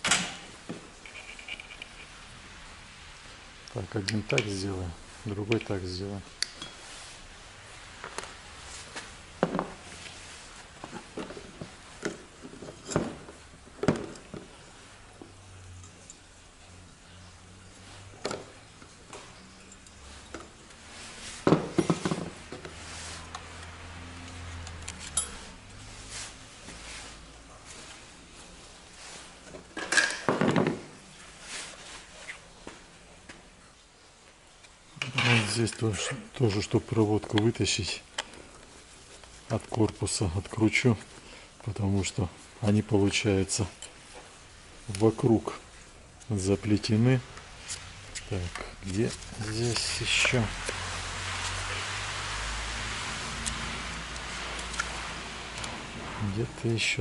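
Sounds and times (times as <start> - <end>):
parts clattering: 0.0 - 2.2, 8.0 - 16.4, 17.7 - 23.7, 29.2 - 31.1.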